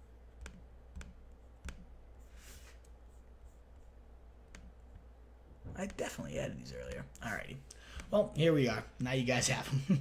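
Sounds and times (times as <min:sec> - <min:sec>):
faint low hum: 0:00.0 - 0:10.0
computer mouse clicks: 0:00.3 - 0:01.9, 0:04.5 - 0:05.1.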